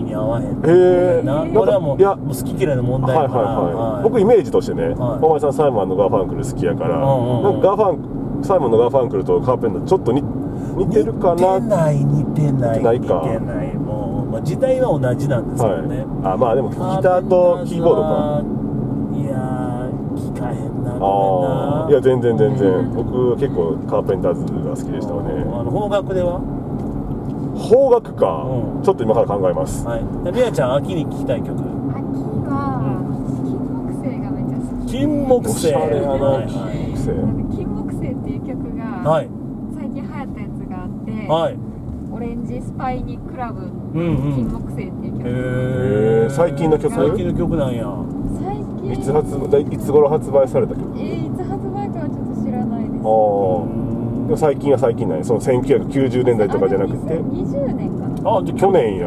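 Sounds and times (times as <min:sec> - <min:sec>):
quiet passenger vocal sounds: 0:00.0 - 0:05.8, 0:06.5 - 0:08.0, 0:10.6 - 0:18.5, 0:19.2 - 0:26.4, 0:29.4 - 0:39.3, 0:43.9 - 0:59.0
car road and engine drone: 0:00.0 - 0:59.0
voices in car: 0:00.0 - 0:59.0.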